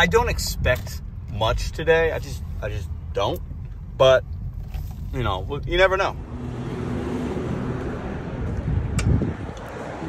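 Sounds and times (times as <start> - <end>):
faint traffic: 0.0 - 10.0.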